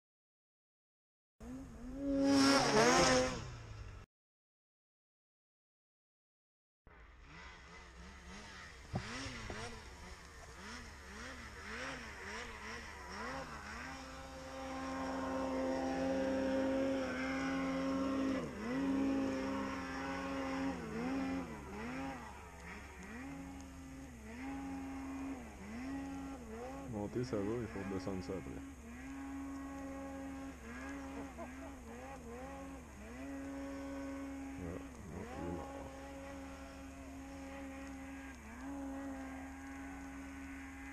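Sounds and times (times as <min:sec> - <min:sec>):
snowmobile engines revving: 0:01.4 - 0:04.0, 0:06.9 - 0:40.9.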